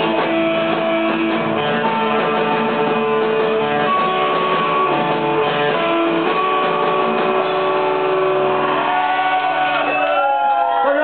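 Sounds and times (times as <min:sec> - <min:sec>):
electric guitars holding a chord: 0:00.0 - 0:10.0
crowd shouting and whooping: 0:07.4 - 0:11.0.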